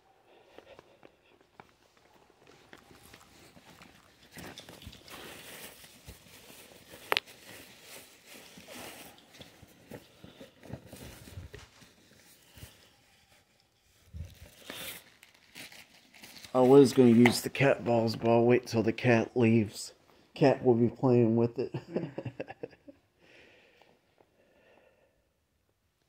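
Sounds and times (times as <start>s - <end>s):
scuffing on concrete floor: 0.4s - 10.2s.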